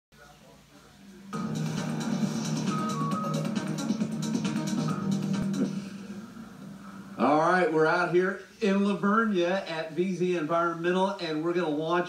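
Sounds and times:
news music with percussive beat: 0:01.4 - 0:07.2.

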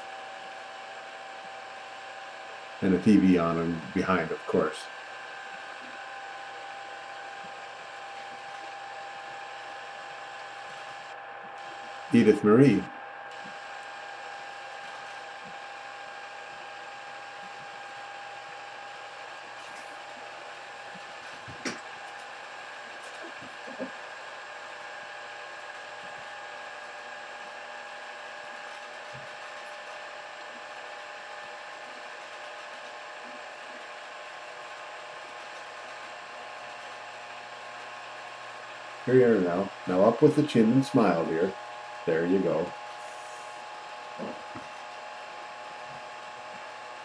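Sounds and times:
machine whirring: 0:01.8 - 0:47.0.

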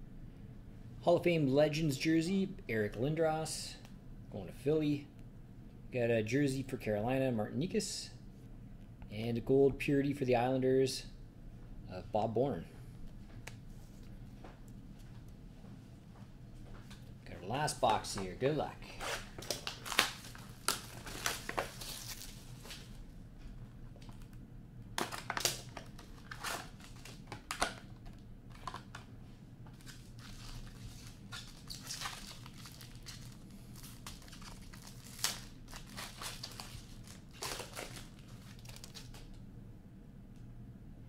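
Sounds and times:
packaging ripping: 0:18.9 - 0:22.9, 0:25.0 - 0:27.8, 0:29.8 - 0:39.3
plastic wrapping crinkling: 0:18.9 - 0:23.0, 0:25.0 - 0:29.0, 0:29.7 - 0:39.4.

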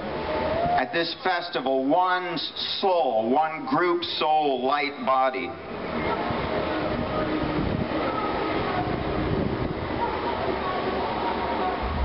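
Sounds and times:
dense rumbling noise: 0:05.5 - 0:12.0.

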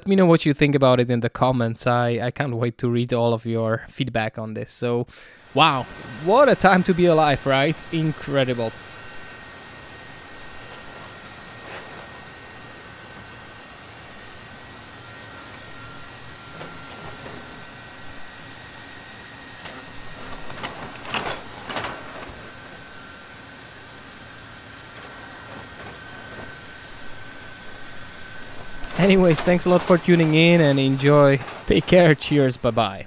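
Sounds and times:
room noise hiss: 0:04.8 - 0:21.9, 0:26.9 - 0:33.0
robot actuators whining: 0:05.3 - 0:33.0.

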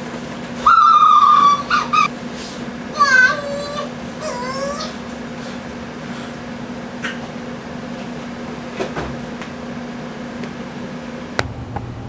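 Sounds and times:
steady low hum: 0:03.6 - 0:12.0.

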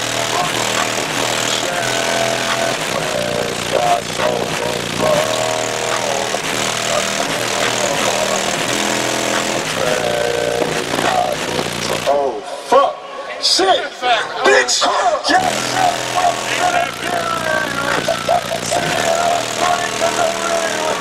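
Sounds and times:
bass-heavy song through subwoofers: 0:00.0 - 0:12.4, 0:15.4 - 0:21.0.

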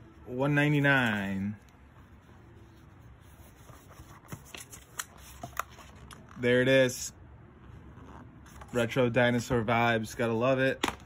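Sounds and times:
book pages being turned: 0:00.6 - 0:06.5.

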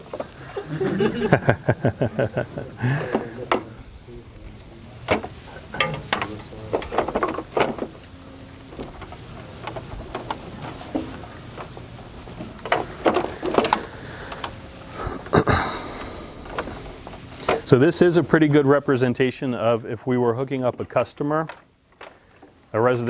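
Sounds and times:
low voices murmuring: 0:00.0 - 0:23.0.

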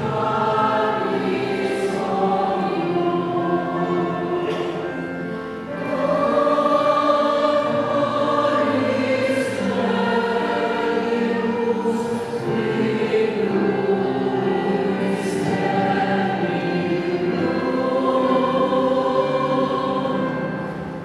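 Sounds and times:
church choir singing: 0:00.0 - 0:21.0.

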